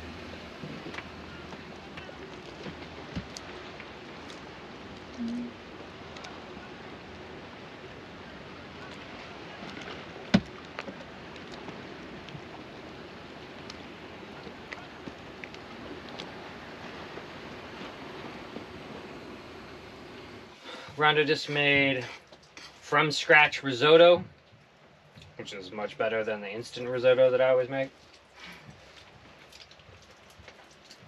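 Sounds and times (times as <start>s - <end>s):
small waves lapping: 0.0s - 23.4s.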